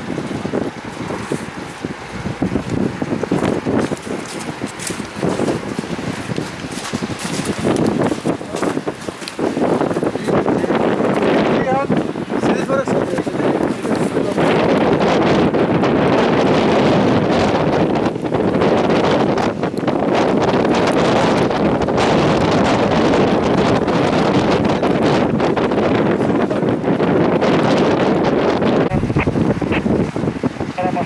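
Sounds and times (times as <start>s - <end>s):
wind blowing across microphone: 0.0s - 31.0s.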